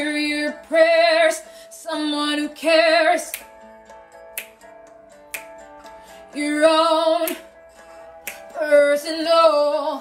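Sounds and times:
quiet backing music: 0.0 - 10.0
finger snaps: 3.3 - 3.6, 4.3 - 4.6, 5.3 - 5.7, 7.2 - 7.5, 8.2 - 8.6
person singing: 6.3 - 7.6, 8.2 - 10.0.

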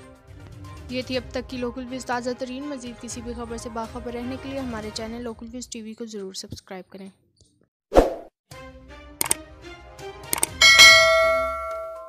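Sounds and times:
quick clicks: 9.2 - 9.4, 10.3 - 10.6
bright bell chime: 10.6 - 12.0.

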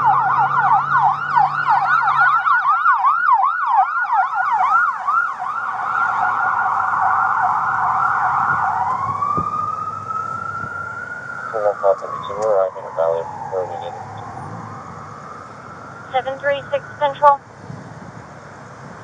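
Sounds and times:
electronic siren yelping: 0.0 - 17.4.

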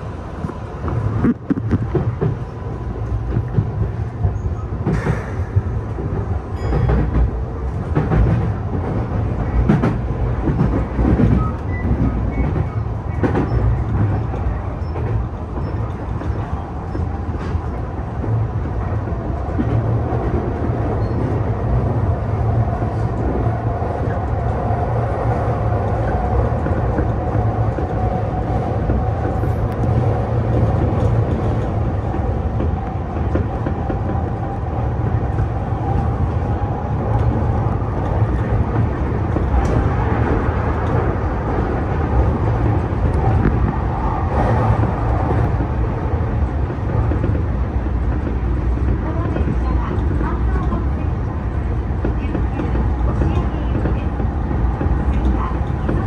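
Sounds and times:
rail joint clacks: 0.0 - 56.0
train wheels rumbling on rail: 0.0 - 56.0.

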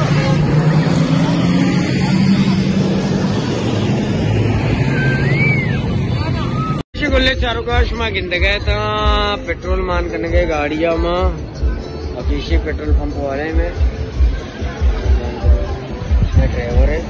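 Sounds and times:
motor vehicle engine running: 0.0 - 9.2.

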